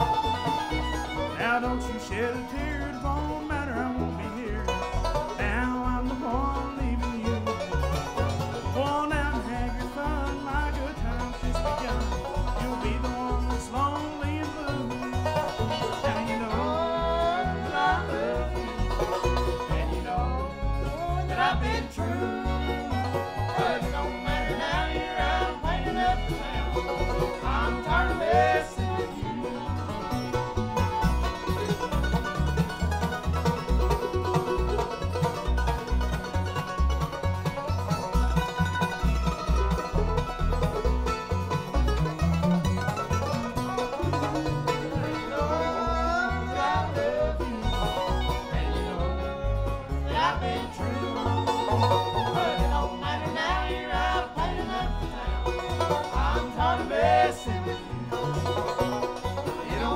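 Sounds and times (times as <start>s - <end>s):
banjo rolls: 0.0s - 59.9s
bluegrass band playing: 0.0s - 59.9s
upright bass plucking: 0.0s - 59.9s.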